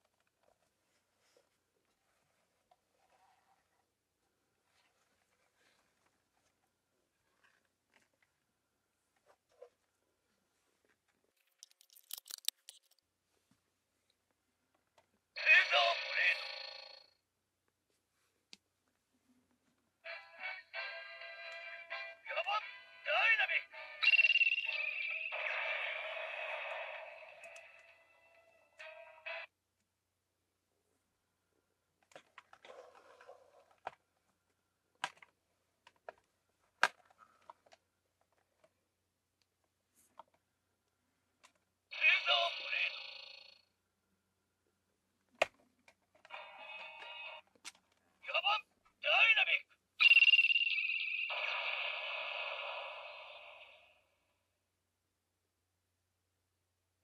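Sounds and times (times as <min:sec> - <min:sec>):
toy sword electronic sound effect: 0:24.0 - 0:27.1, 0:50.0 - 0:53.7.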